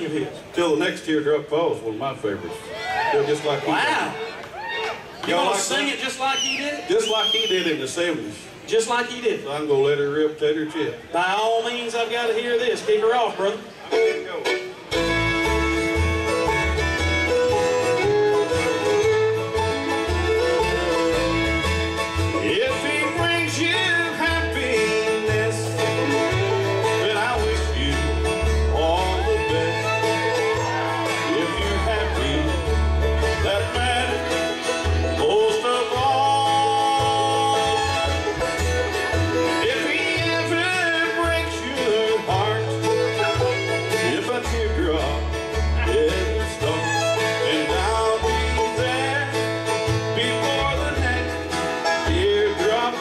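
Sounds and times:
acoustic guitars: 0.0 - 53.0
fiddle: 2.2 - 7.7, 12.8 - 53.0
banjo: 11.2 - 53.0
plucked upright bass: 13.9 - 53.0.

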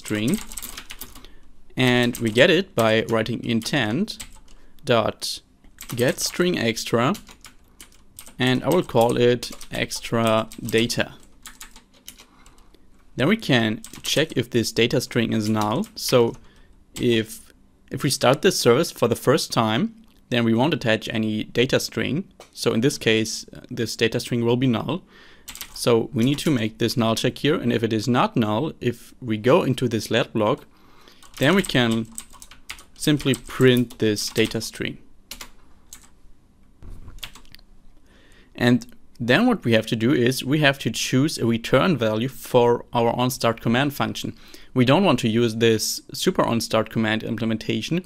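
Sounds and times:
keyboard typing: 0.0 - 1.3, 2.0 - 4.6, 7.1 - 12.6, 13.8 - 14.4, 25.5 - 26.5, 31.2 - 34.6, 35.3 - 36.2, 36.8 - 37.6
keyboard keystrokes: 36.9 - 37.5.

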